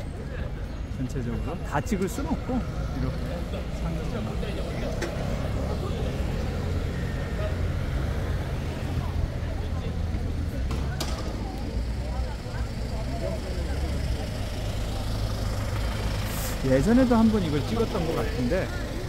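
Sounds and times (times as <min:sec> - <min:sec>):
faint voices: 0:00.0 - 0:19.0
street traffic rumble: 0:00.0 - 0:19.0.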